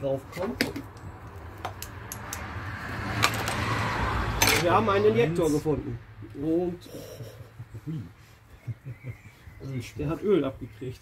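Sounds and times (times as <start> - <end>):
hand tools clicking and knocking: 0.3 - 2.5.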